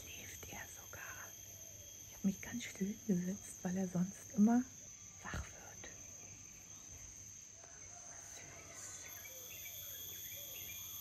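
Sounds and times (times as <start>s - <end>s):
insects trilling high: 0.0s - 11.0s
lower insect tone: 0.0s - 11.0s.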